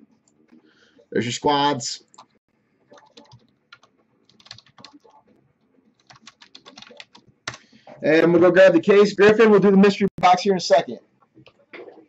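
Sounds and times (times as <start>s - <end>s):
computer keyboard typing: 2.2s - 7.6s.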